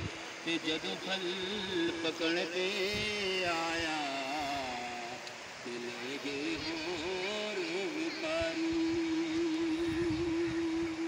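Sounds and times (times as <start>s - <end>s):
man singing a long note: 0.4s - 11.0s.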